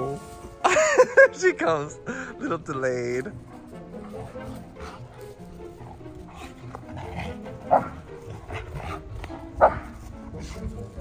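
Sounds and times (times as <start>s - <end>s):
background music: 0.0s - 11.0s
dogs barking: 3.3s - 11.0s.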